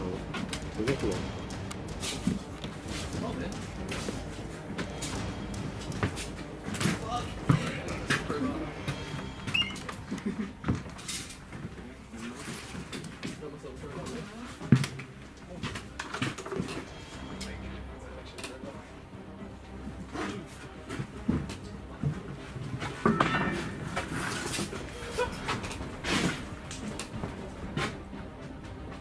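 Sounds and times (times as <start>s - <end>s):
footsteps and rustling: 0.0s - 17.6s, 19.9s - 29.0s
faint indistinct voices: 2.0s - 28.0s.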